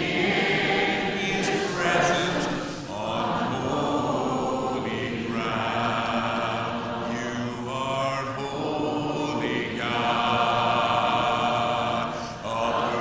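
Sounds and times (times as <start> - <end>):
congregation singing a hymn: 0.0 - 13.0.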